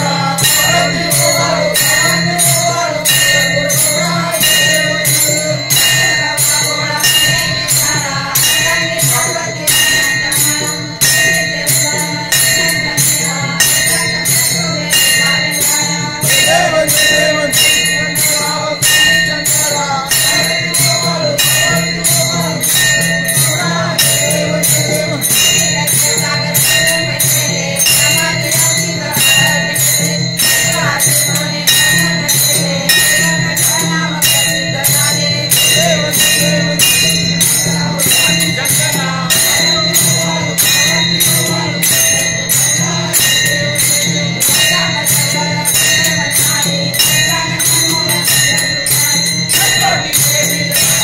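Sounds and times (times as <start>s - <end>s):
brass temple bell ringing: 0.0s - 51.0s
hand cymbals clashing: 0.0s - 51.0s
person singing: 0.0s - 51.0s.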